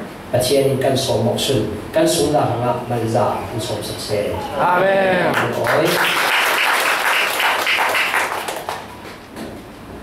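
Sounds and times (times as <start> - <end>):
congregation applause: 5.3 - 9.2.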